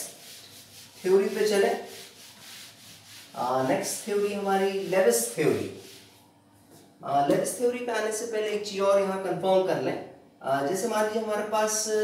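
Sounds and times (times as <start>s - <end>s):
eraser rubbing on whiteboard: 0.0s - 6.2s.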